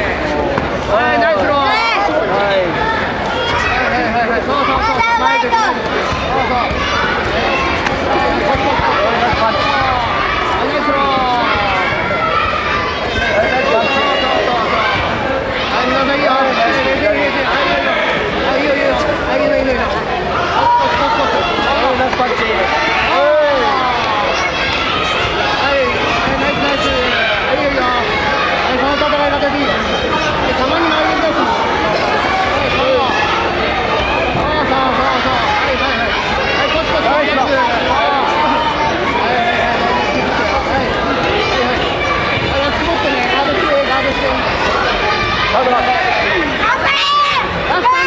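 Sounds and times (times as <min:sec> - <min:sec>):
crowd chatter: 0:00.0 - 0:48.0
spectators shouting: 0:00.0 - 0:48.0.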